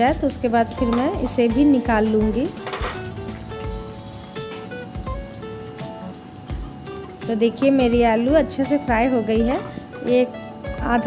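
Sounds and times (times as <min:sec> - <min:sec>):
background music of held notes: 0:00.0 - 0:11.0
potatoes sizzling in hot oil: 0:00.0 - 0:11.0.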